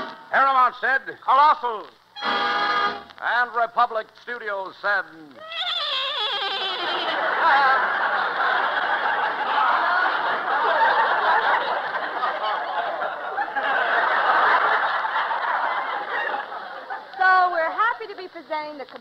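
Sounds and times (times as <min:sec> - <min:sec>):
studio audience laughing: 0:06.8 - 0:17.2.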